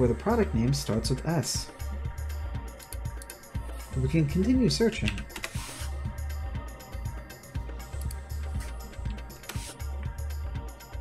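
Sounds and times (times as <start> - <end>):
music with pulsing bass beat: 0.1 - 11.0.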